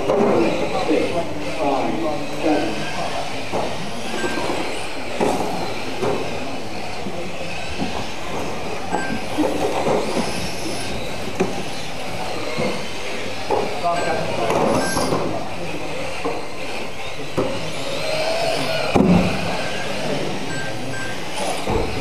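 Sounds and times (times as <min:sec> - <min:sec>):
rc car motor and gear whine: 0:00.0 - 0:22.0.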